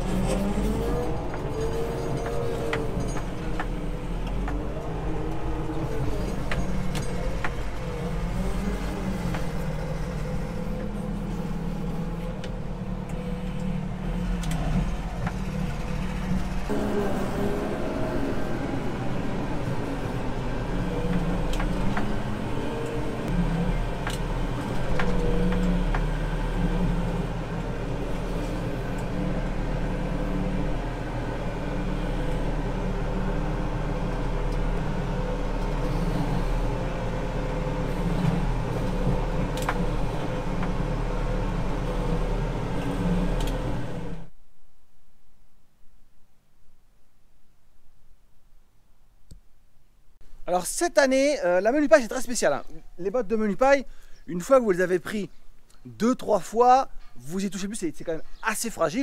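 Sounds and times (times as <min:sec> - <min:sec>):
diesel engine running: 0:00.0 - 0:44.3.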